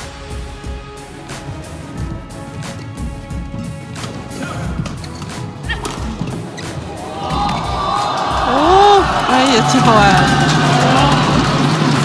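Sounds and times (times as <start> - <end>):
music: 0.0 - 12.0
rackets hitting shuttlecock: 3.9 - 7.8
shouts and cheering: 6.9 - 12.0.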